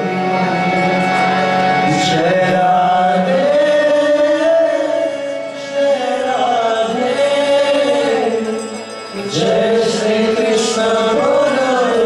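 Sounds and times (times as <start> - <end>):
sustained instrumental accompaniment: 0.0 - 12.0
voices chanting together: 2.0 - 12.0.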